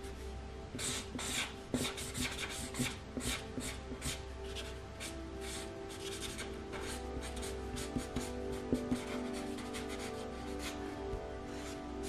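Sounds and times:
felt-tip marker scratching on paper: 0.8 - 7.0.

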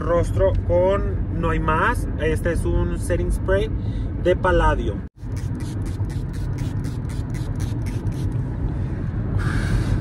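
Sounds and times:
car road rumble: 0.0 - 10.0
pump bottle spraying: 5.2 - 8.4.

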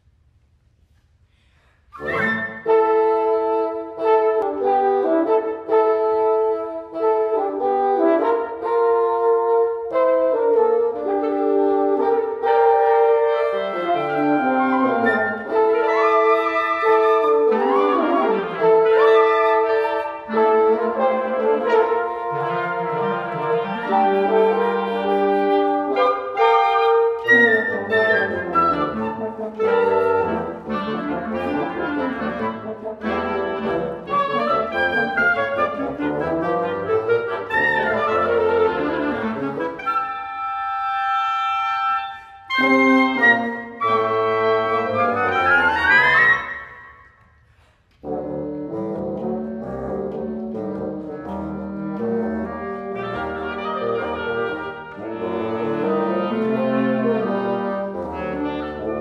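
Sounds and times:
wind quintet playing: 1.8 - 59.0
low bassoon line: 1.9 - 59.0.

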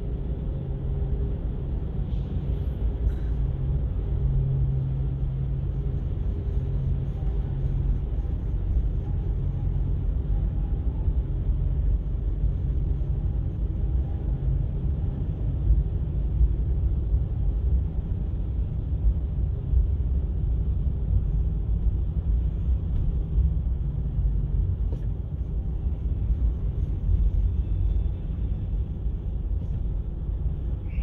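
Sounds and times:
low engine rumble: 0.0 - 31.0
low hum: 0.0 - 31.0.

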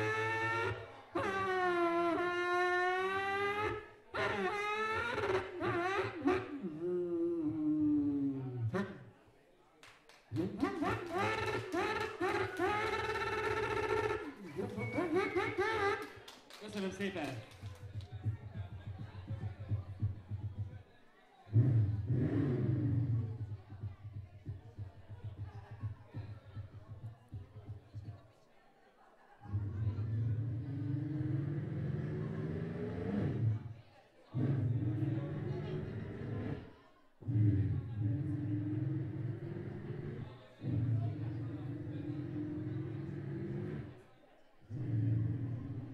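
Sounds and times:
man vocalizing through pa: 6.6 - 9.0.

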